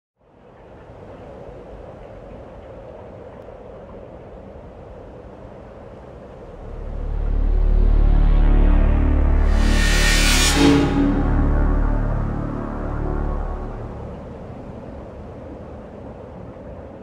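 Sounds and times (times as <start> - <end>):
noisy drone with hum: 6.4 - 16.0
deep bass rumble: 6.5 - 15.0.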